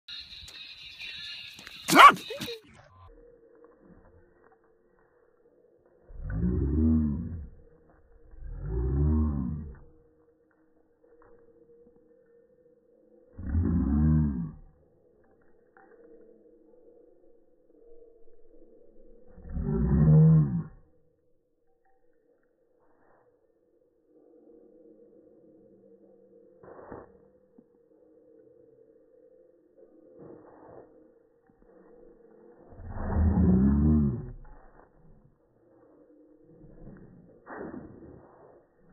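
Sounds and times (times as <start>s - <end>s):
deep drawn-out voice sounds: 6.1s - 7.6s, 8.3s - 9.9s, 13.4s - 14.8s, 19.3s - 20.9s, 32.8s - 35.0s.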